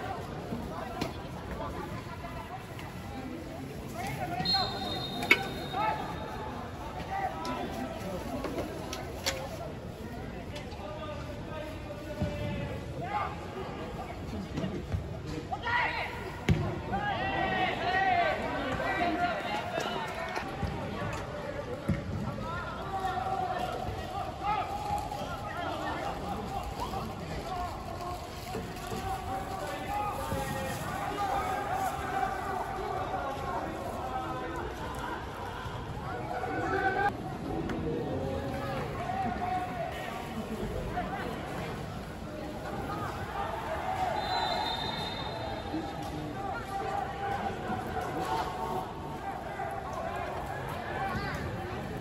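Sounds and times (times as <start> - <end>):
football kicked with thump: 16.5 - 16.8.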